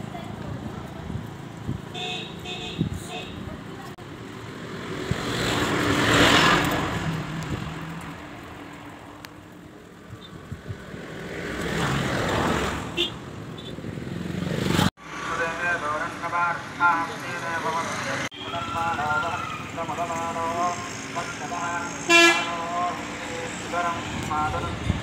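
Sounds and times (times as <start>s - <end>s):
voices: 0.0s - 4.0s, 15.2s - 25.0s
road vehicle passing: 0.0s - 25.0s.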